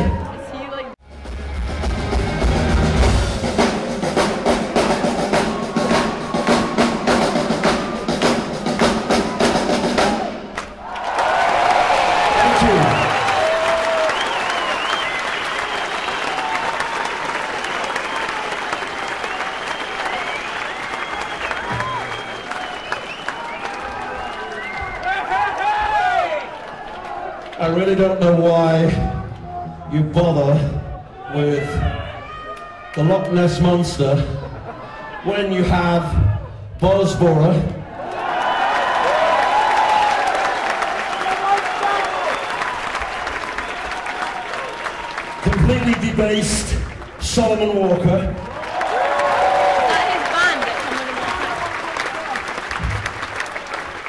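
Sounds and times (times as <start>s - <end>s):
live rock band playing: 1.1s - 10.2s
crowd cheering and whistling: 4.8s - 8.4s, 9.1s - 27.6s, 37.8s - 54.0s.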